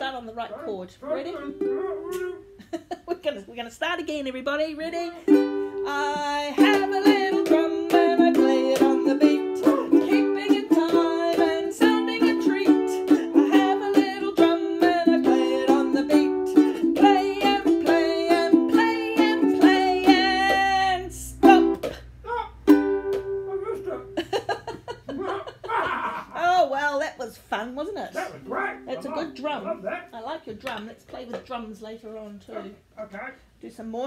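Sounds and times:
ukulele strumming chords: 1.2 - 2.6, 5.0 - 24.3, 28.4 - 29.6
woman singing children's song: 3.0 - 22.1.

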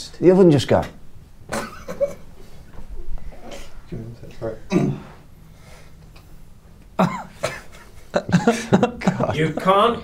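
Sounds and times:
man coughing: 4.7 - 5.2, 7.0 - 9.4.

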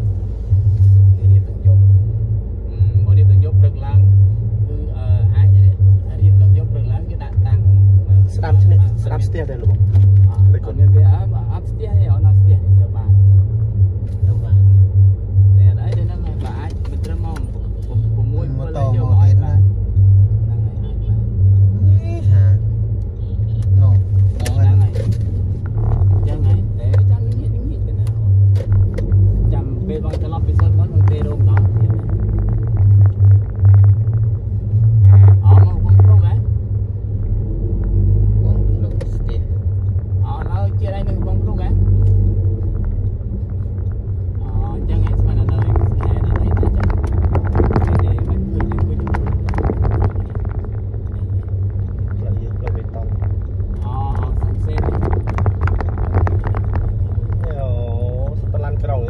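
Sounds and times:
car engine and road noise: 0.0 - 59.0
people talking: 0.8 - 2.0, 2.7 - 13.4, 14.1 - 14.9, 15.5 - 19.8, 20.4 - 21.2, 21.8 - 22.6, 23.2 - 33.9, 35.0 - 36.5, 38.3 - 39.6, 40.2 - 42.4, 44.4 - 50.5, 52.1 - 59.0.

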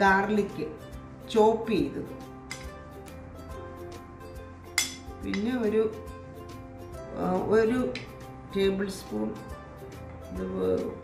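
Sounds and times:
background music: 0.0 - 11.0
metal spoon clinking on plate: 2.5 - 2.7, 4.8 - 5.5.

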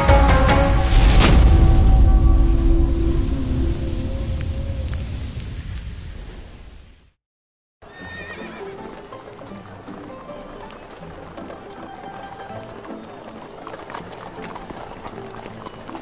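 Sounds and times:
theme music: 0.0 - 4.7
horse whinnying: 7.8 - 8.9
hooves clip-clopping: 7.8 - 16.0.

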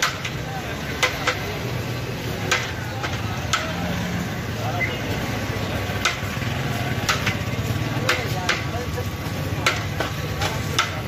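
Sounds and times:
indistinct voices: 0.0 - 11.0
traffic hum: 0.0 - 11.0.

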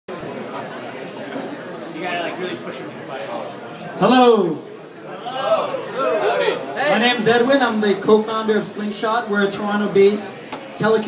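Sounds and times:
crowd chatter: 0.1 - 11.0.

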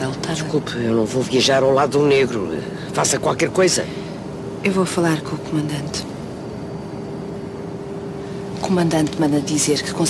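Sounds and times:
airliner cabin drone: 0.0 - 10.0.

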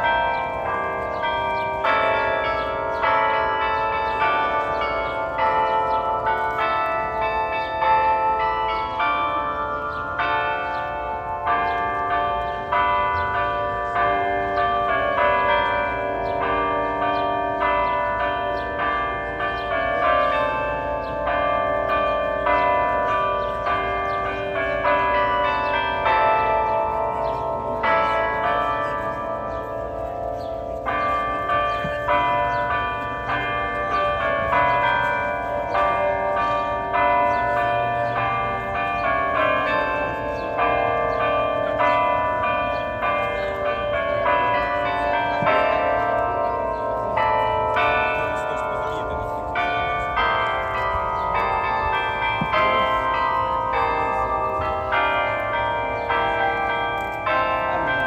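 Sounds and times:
clock bells playing a melody: 0.0 - 58.0.

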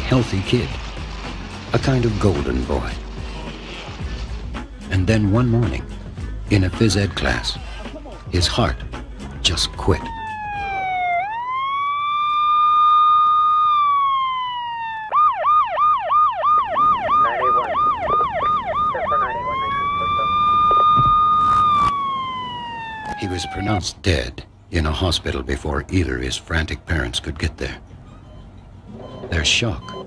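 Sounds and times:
ambulance siren wail and yelp: 9.4 - 23.9.

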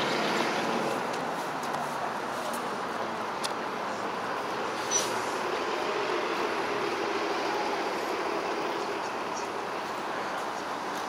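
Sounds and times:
elevated train rumbling over viaduct: 0.0 - 11.0
steady traffic noise: 0.0 - 11.0.

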